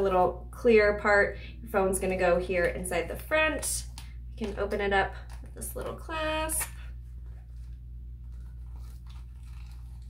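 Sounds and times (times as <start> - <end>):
steady low hum: 0.0 - 10.0
rustling of handbag contents: 7.0 - 10.0.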